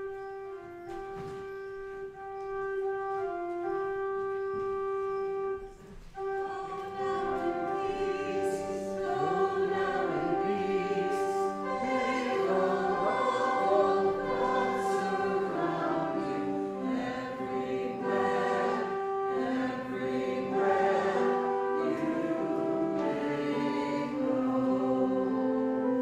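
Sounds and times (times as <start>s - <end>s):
long held instrumental notes: 0.0s - 26.0s
group singing a hymn: 6.2s - 26.0s.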